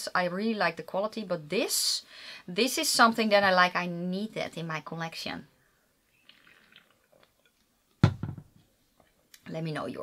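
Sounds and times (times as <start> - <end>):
person sipping and swallowing: 6.2 - 7.6.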